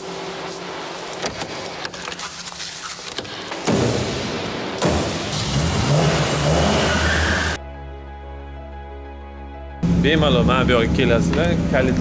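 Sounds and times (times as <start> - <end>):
film soundtrack music: 3.9 - 11.9
car engine revving: 4.8 - 7.6.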